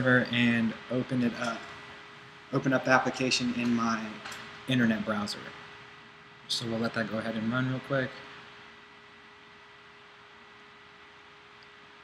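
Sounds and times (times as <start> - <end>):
faint constant hum: 0.0 - 12.0
steady hiss: 0.0 - 12.0.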